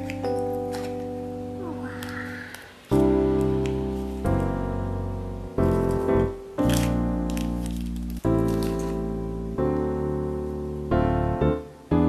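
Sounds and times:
plastic sleeve crinkling: 0.0 - 4.6, 5.6 - 9.9
piano chords: 0.0 - 12.0.

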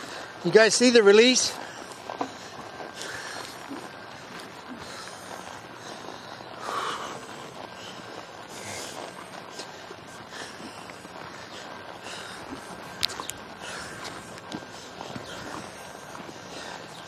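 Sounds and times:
horse loping on sand: 0.0 - 17.0
outdoor hiss: 0.0 - 17.0
horse snorting: 1.5 - 17.0.

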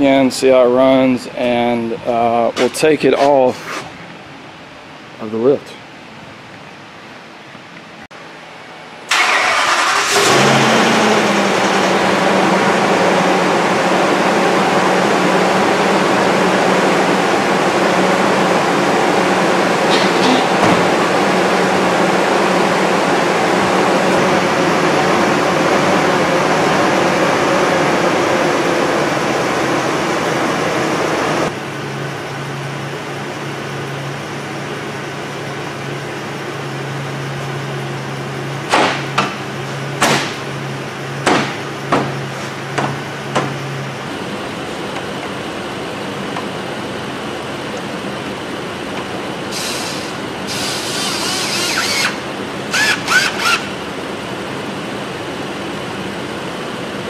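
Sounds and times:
engine running steadily: 4.0 - 57.0
engine cranking and starting: 9.1 - 12.1, 49.6 - 53.8.

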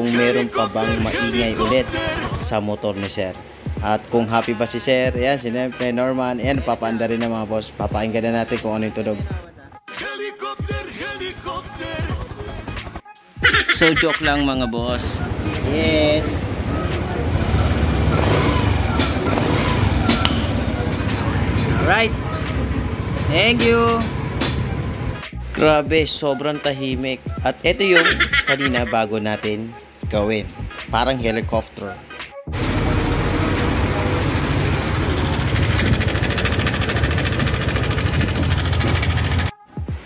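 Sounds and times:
scooter engine clattering: 16.3 - 25.2, 32.6 - 39.5.

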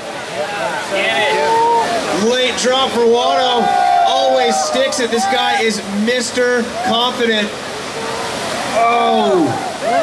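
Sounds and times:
ocean surf: 0.0 - 10.0.

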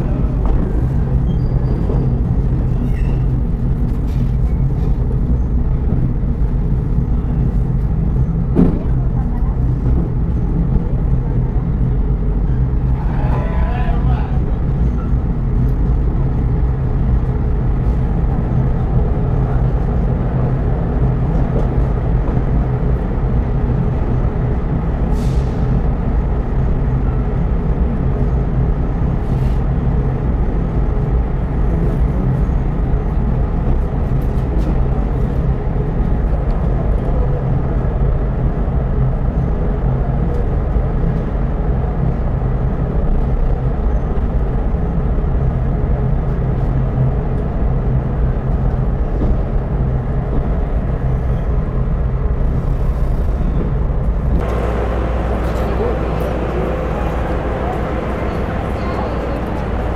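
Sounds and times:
diesel train engine rumbling: 0.0 - 59.9.

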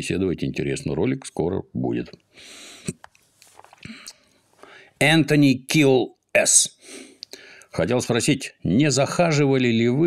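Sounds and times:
man breathing softly: 2.3 - 3.0, 3.8 - 5.0, 6.8 - 7.7.

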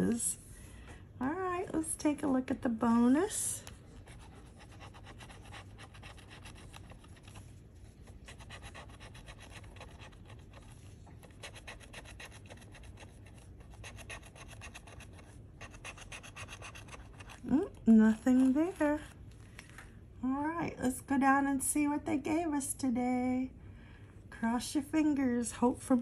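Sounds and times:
scratching lottery ticket: 3.9 - 19.0.

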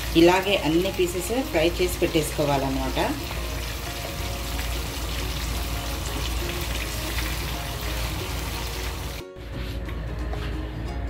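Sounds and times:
chicken sizzling in oil: 0.0 - 9.2
background music: 0.0 - 11.0.

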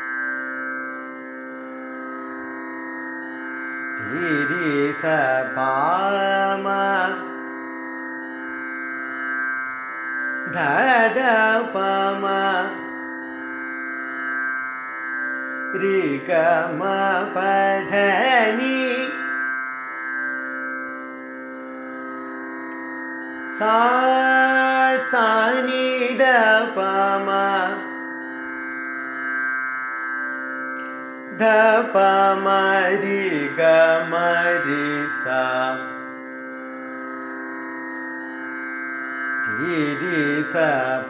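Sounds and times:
sustained drone: 0.0 - 41.0.

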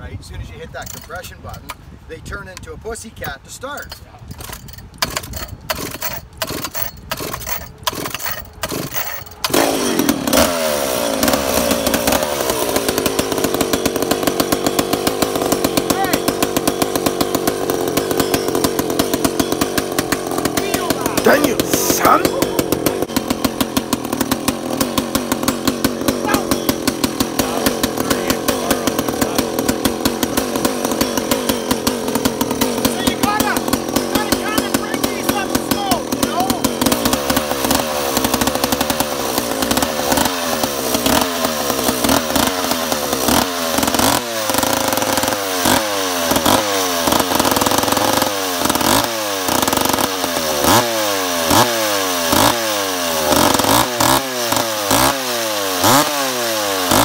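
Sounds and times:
chainsaw idling and revving: 3.1 - 57.0.

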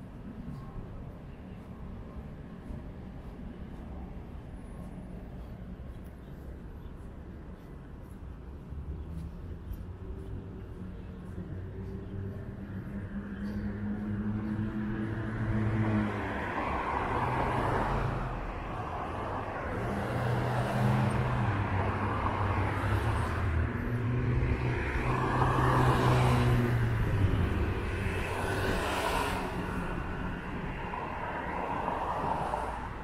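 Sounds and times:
cars passing: 0.0 - 33.0.

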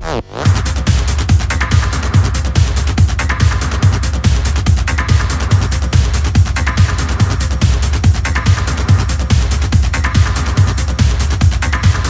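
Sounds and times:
kick drum: 0.0 - 12.0.

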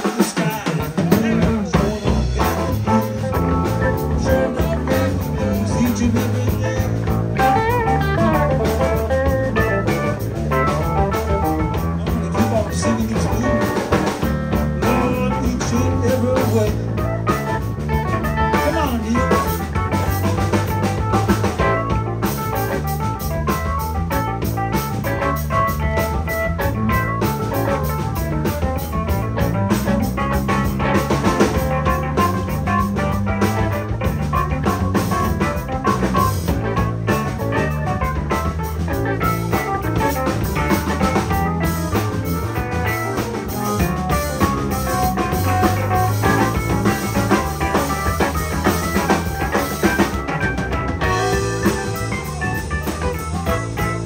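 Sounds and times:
drum kit: 0.0 - 54.0
electric guitar lead with bent notes: 0.0 - 54.0
keyboard: 0.0 - 54.0
electric bass: 0.6 - 54.0.

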